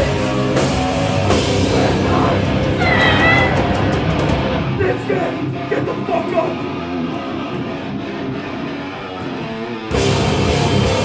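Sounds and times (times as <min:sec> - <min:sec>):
punk band playing live: 0:00.0 - 0:11.0.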